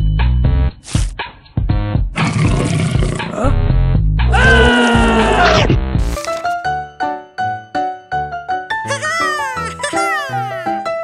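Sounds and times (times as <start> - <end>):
cartoon music: 8.8 - 11.0.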